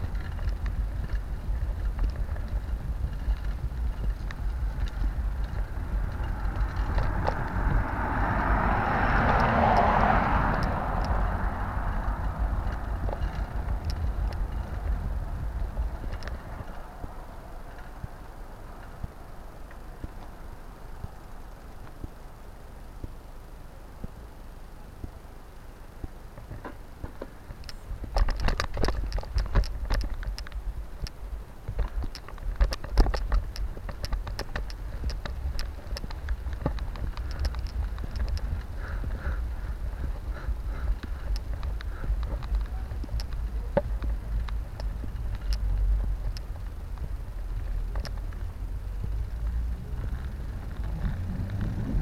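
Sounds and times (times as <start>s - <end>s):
bike clicks and rattles: 0.0s - 20.4s, 26.3s - 52.0s
rumble of wind and trail vibration: 0.0s - 52.0s.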